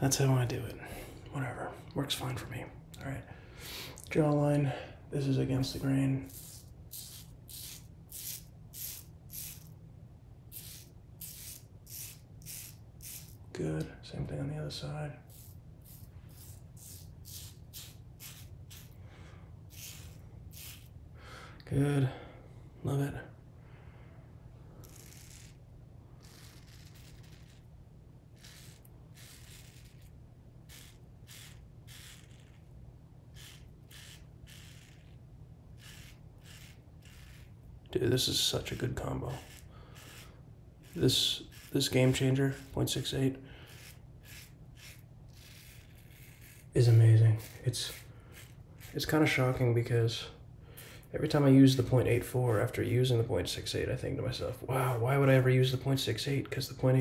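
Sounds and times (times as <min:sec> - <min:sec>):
razor scraping through stubble: 0:06.2 - 0:09.7, 0:10.5 - 0:13.4, 0:15.3 - 0:19.0, 0:19.7 - 0:20.9, 0:24.8 - 0:25.6, 0:26.2 - 0:27.7, 0:28.3 - 0:49.8.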